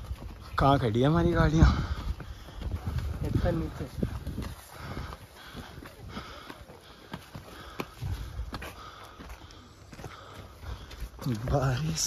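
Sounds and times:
footsteps crunching on stony dirt: 0:00.0 - 0:12.0.

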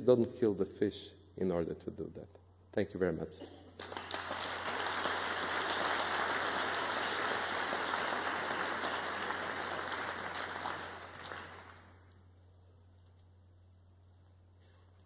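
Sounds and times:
audience applauding: 0:03.8 - 0:12.0.

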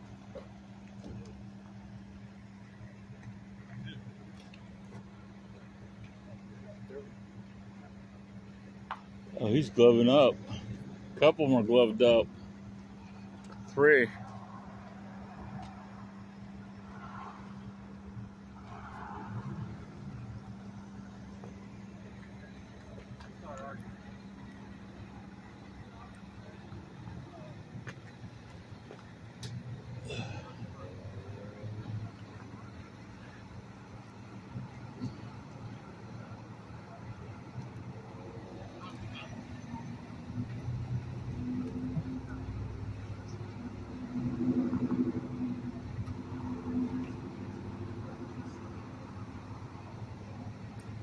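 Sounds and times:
low traffic rumble: 0:00.0 - 0:51.0
vehicle engines idling: 0:00.0 - 0:51.0
faint distant voices: 0:01.0 - 0:51.0.

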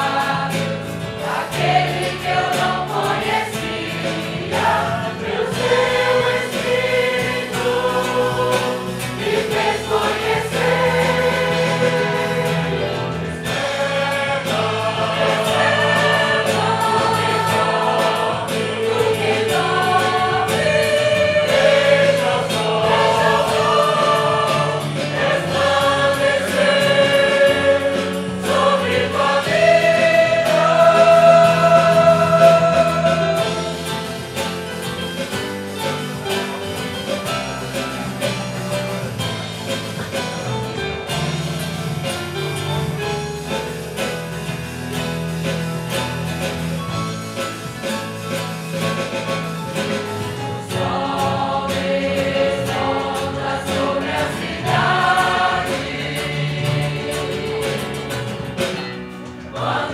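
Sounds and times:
choir singing a hymn: 0:00.0 - 0:59.9.

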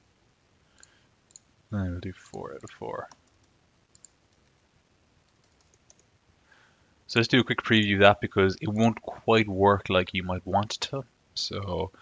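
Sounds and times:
keyboard typing clicks: 0:02.3 - 0:04.5, 0:05.3 - 0:06.1.

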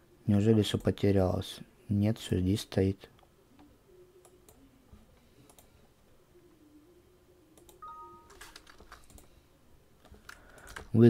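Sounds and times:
computer mouse clicking: 0:03.6 - 0:04.6, 0:05.4 - 0:05.7, 0:07.6 - 0:07.8, 0:08.4 - 0:09.3, 0:10.0 - 0:10.9.

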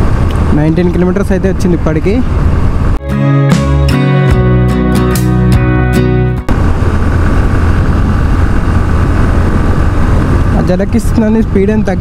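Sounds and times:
wind rushing over microphone: 0:00.0 - 0:03.0, 0:06.4 - 0:12.0
motorcycle engine drone: 0:00.0 - 0:12.0.

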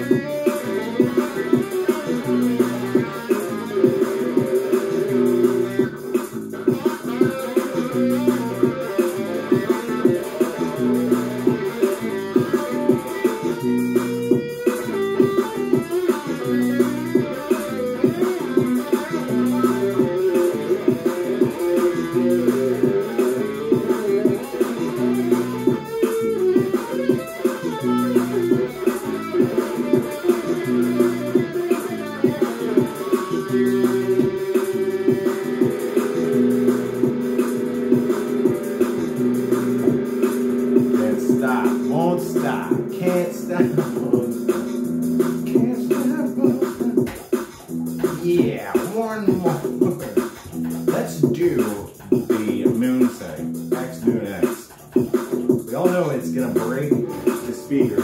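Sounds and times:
electric guitar riff: 0:00.0 - 0:51.1, 0:52.2 - 0:58.0.

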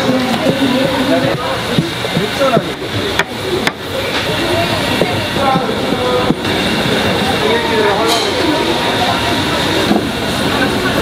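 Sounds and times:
busy street market din: 0:00.0 - 0:11.0
faint indistinct voices: 0:00.0 - 0:11.0.

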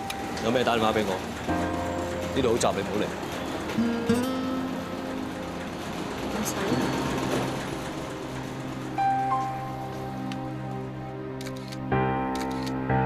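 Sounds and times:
background music with held notes: 0:00.0 - 0:13.0
camera shutter clicks: 0:11.4 - 0:11.8, 0:12.4 - 0:12.8.

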